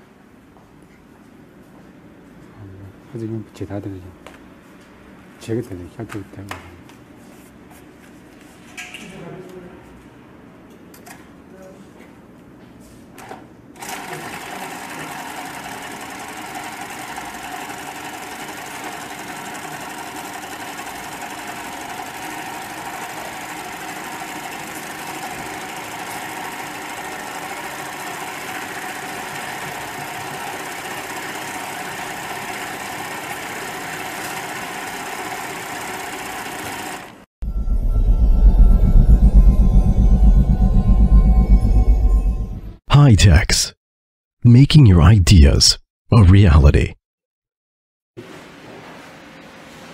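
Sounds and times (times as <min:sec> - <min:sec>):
industrial sewing machine stitching: 0:13.8 - 0:37.2.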